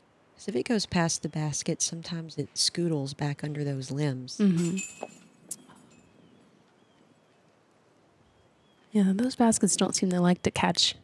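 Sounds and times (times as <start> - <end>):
disc striking chain basket: 4.6 - 6.0.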